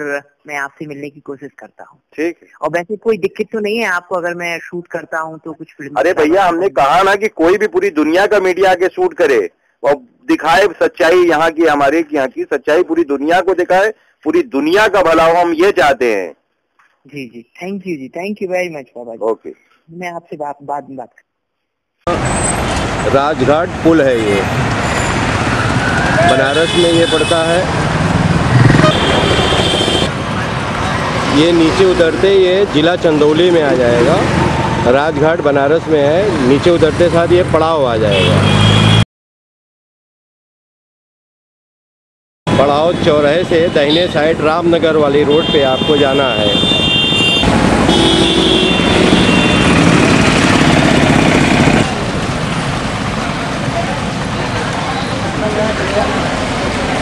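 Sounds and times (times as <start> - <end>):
vehicle engine and road rumble: 22.0 - 39.0, 42.5 - 57.0
vehicle horn sounding: 28.7 - 30.1, 38.1 - 39.0, 45.3 - 49.8.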